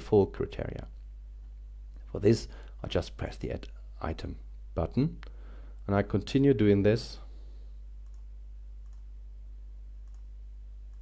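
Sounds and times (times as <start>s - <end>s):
low electrical hum: 0.0s - 11.0s
computer mouse clicks: 8.0s - 9.1s, 10.0s - 10.3s.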